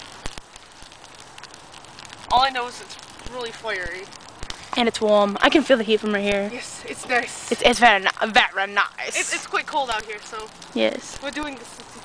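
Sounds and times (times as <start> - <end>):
campfire crackling: 0.0 - 12.0
fire hissing: 0.0 - 12.0
sharp snaps of burning sticks: 0.0 - 12.0.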